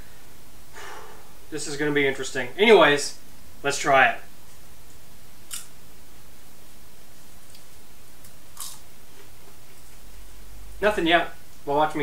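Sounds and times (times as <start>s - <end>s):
steady low hiss: 0.0s - 12.0s
popcorn crunching: 5.4s - 5.7s, 7.4s - 10.0s.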